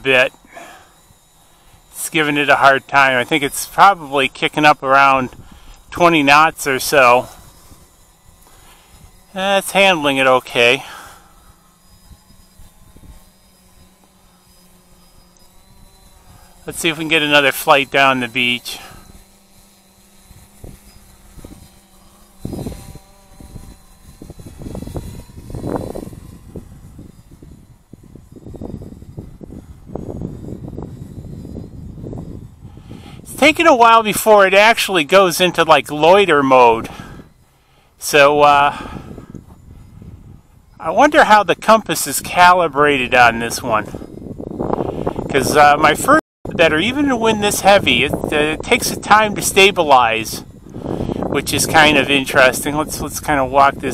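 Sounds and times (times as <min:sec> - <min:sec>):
man speaking: 0:00.0 - 0:00.8, 0:02.0 - 0:05.3, 0:05.9 - 0:07.4, 0:09.3 - 0:11.0, 0:16.7 - 0:19.0, 0:33.3 - 0:37.0, 0:38.0 - 0:38.9, 0:40.8 - 0:44.0, 0:45.3 - 0:50.4, 0:51.3 - 0:53.9
wind buffeting microphone: 0:00.0 - 0:37.5, 0:38.1 - 0:53.9.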